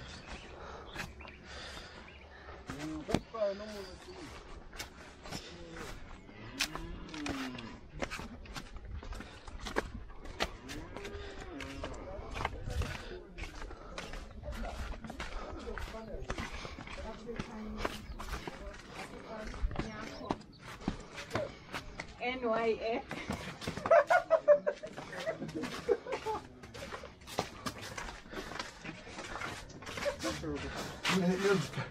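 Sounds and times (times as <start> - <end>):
footsteps on a dirt path: 0.0 - 31.9
cattle lowing: 5.4 - 8.4.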